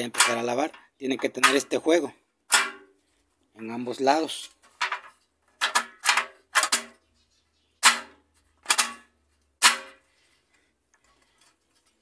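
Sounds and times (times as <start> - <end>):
metallic clanks of washer legs: 0.0 - 1.8.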